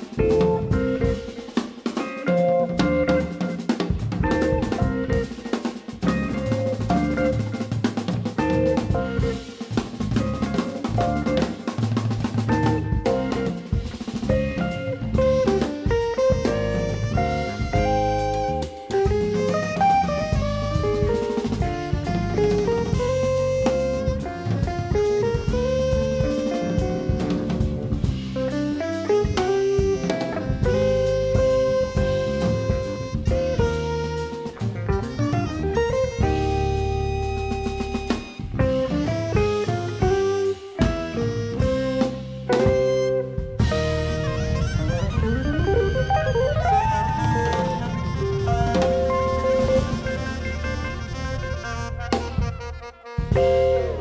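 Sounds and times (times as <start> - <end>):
jazz fusion band playing: 0.0 - 54.0
soprano saxophone: 8.3 - 54.0.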